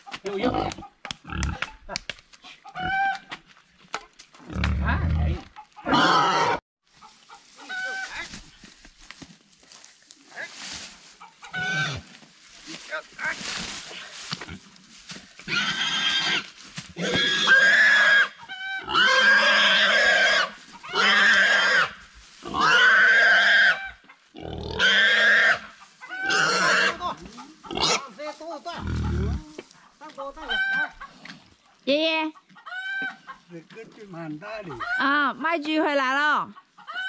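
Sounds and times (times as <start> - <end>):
pig squealing: 2.6 - 3.3, 4.5 - 6.6, 7.6 - 8.2, 11.3 - 12.0, 15.5 - 28.1, 28.8 - 29.4, 30.4 - 31.2, 32.6 - 33.4, 34.7 - 35.3, 36.8 - 37.0.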